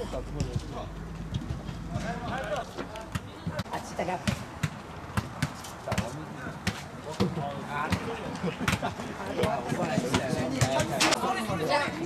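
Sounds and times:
ball being kicked: 0.4 - 11.1.

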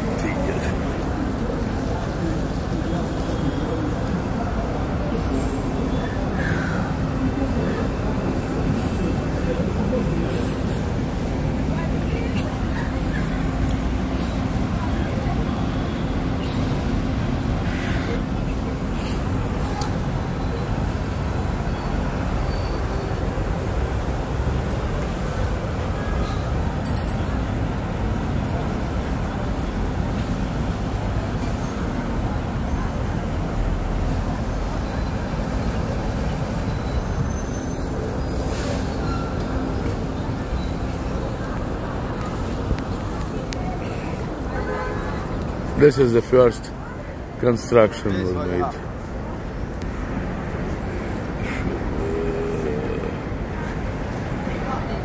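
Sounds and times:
city traffic rumble: 0.0 - 55.0.

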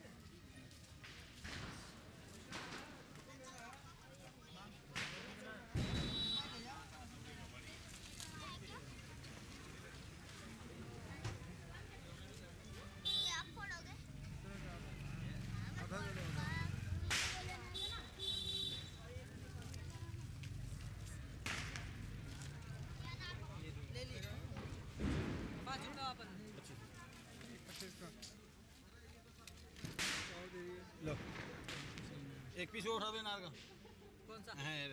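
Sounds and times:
firecracker crack: 1.0 - 3.4, 4.8 - 8.4, 16.9 - 19.1, 21.2 - 22.9, 24.6 - 26.1, 29.8 - 32.8
people talking: 2.3 - 20.3
sharp crack: 17.0 - 17.9, 21.4 - 22.2, 29.9 - 32.2.

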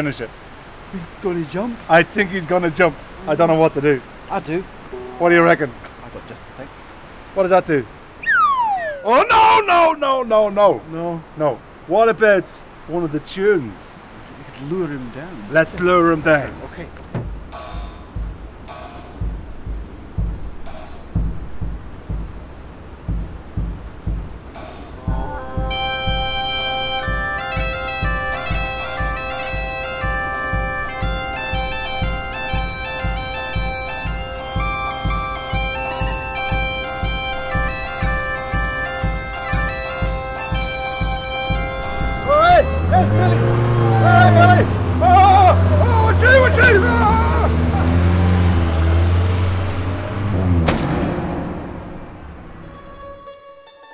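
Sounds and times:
bass drum beating: 16.9 - 49.3
bagpipes playing: 25.0 - 48.3.

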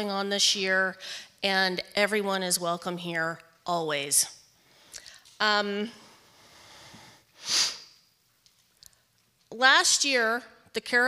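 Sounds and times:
person sniffing: 6.4 - 8.0.

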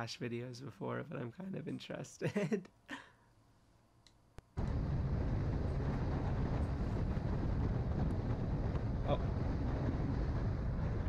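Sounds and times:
wind buffeting microphone: 4.6 - 11.0.

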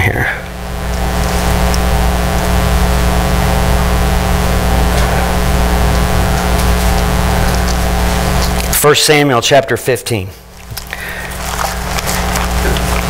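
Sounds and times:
electrical mains hum: 0.0 - 13.0
pages clicking: 10.6 - 13.0.

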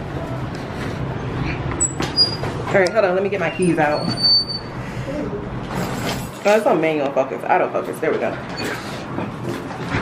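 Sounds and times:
glass door squeaking: 1.8 - 2.6, 3.4 - 4.7.

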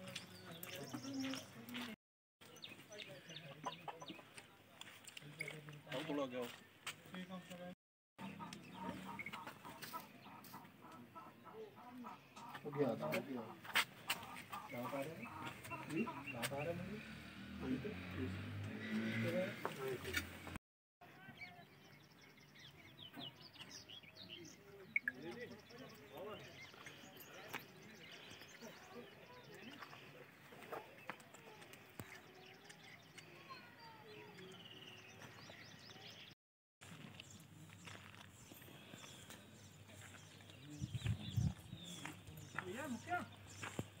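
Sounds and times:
small birds chirping: 0.0 - 20.5, 21.1 - 44.0
voices: 0.0 - 22.4, 23.0 - 36.3, 38.6 - 43.9.

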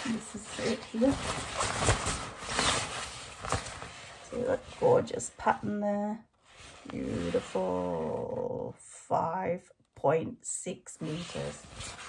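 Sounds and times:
fabric crinkling and rustling: 0.0 - 8.6, 11.0 - 12.0
sharp fabric crackle: 0.1 - 4.8.

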